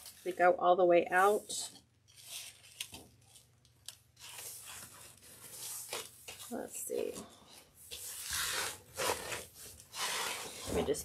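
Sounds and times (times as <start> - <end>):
fabric ribbon rustling: 1.2 - 10.8.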